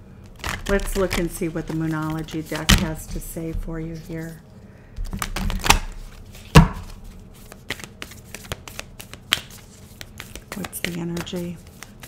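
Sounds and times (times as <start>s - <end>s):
cards being shuffled: 0.2s - 4.4s, 5.0s - 12.0s.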